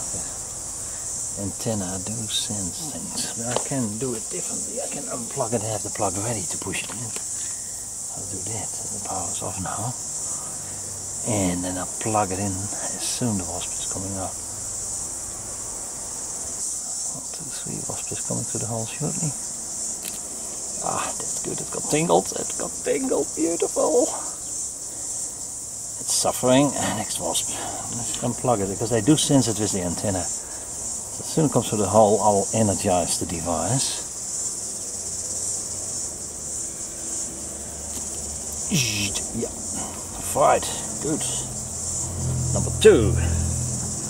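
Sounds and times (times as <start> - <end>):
high-pitched hiss: 0.0 - 44.0.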